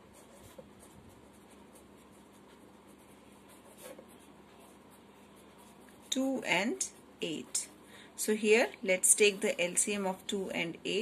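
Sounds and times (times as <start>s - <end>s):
pen scratching on paper: 0.2s - 7.7s.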